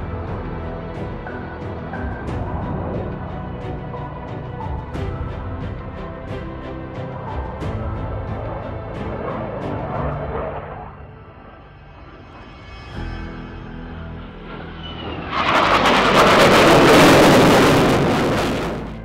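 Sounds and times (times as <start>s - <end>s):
background music: 0.0s - 19.0s
jet engines roaring: 0.0s - 19.0s.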